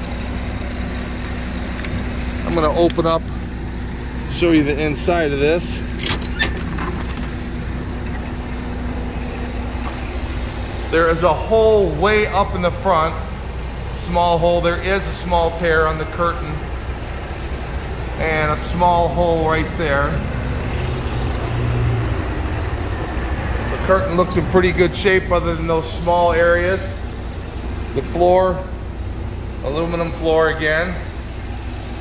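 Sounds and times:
vehicle engine rumbling: 0.0s - 32.0s.

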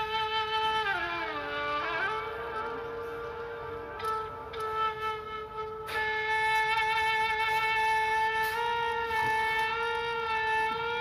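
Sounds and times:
flute holding a long note: 0.0s - 11.0s.

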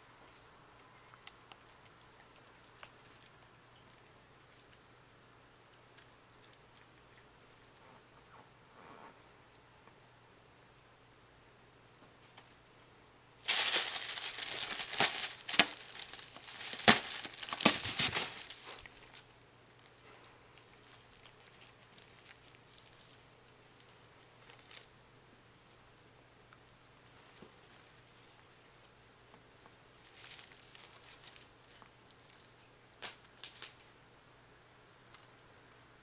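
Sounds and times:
tissue paper crinkling: 13.4s - 19.3s, 30.0s - 31.8s.

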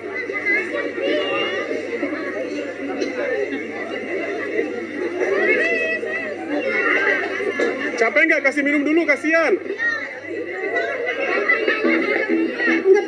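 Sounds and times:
people chattering: 0.0s - 13.0s
high-pitched voices: 10.9s - 13.0s.

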